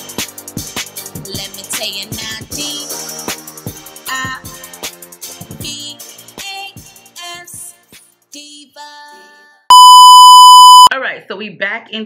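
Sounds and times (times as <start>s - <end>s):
intro music: 9.7s - 10.9s
loud electronic beep: 9.7s - 11.0s.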